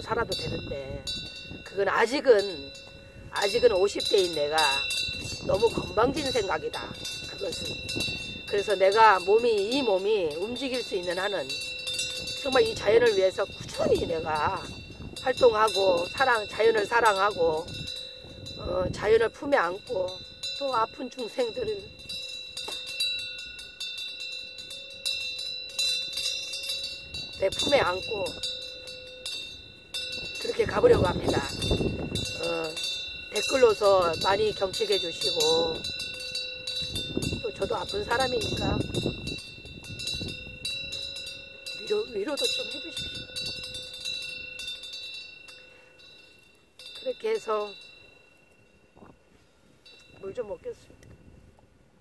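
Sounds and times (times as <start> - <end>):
metal wind bell ringing: 0.0 - 51.4.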